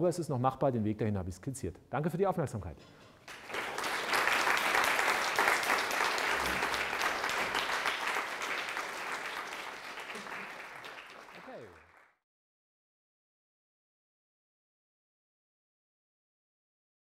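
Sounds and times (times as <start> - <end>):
audience applauding: 3.2 - 12.2.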